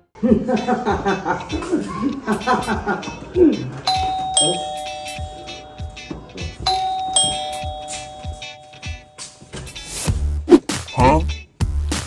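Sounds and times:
electronic doorbell chime: 0:03.9 - 0:10.0.

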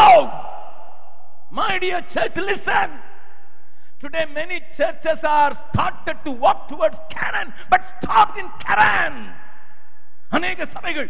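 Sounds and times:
man shouting into microphone: 0:00.0 - 0:00.9, 0:01.5 - 0:03.1, 0:04.0 - 0:09.6, 0:10.3 - 0:11.0
man speaking: 0:01.5 - 0:03.1, 0:04.0 - 0:09.4, 0:10.3 - 0:11.0.

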